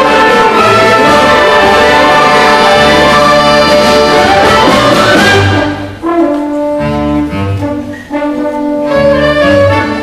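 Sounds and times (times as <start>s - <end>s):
concert band playing: 0.0s - 10.0s.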